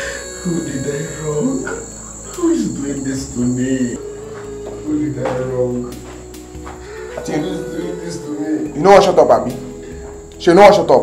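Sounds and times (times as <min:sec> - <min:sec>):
steady high-pitched tone: 0:00.0 - 0:04.2.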